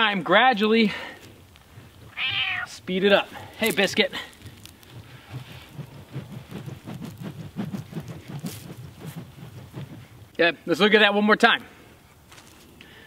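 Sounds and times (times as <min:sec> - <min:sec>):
feet shifting on dry leaves: 0:01.2 - 0:10.3, 0:12.3 - 0:12.8
sticks swishing through air: 0:01.2 - 0:11.2.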